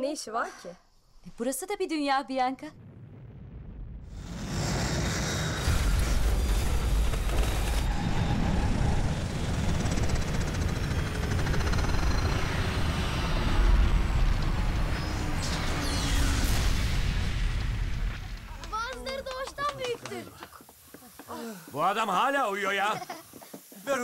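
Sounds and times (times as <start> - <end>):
heavy rumble with hissing: 4.0 - 19.9.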